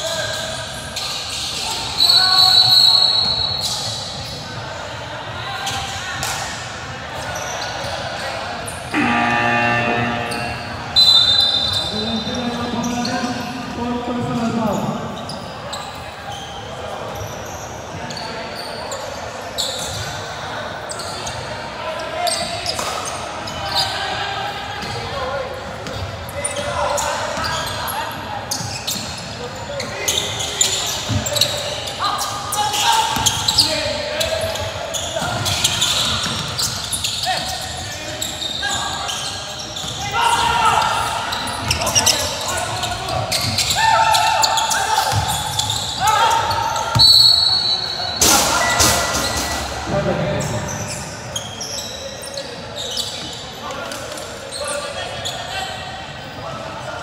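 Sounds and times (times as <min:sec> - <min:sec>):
people calling out: 0:08.9 - 0:12.3
basketball bouncing on court: 0:45.1 - 0:45.4.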